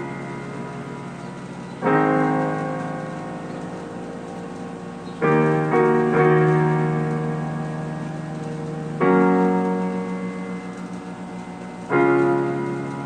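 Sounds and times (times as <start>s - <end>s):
piano chords on keyboard: 0.0s - 13.0s.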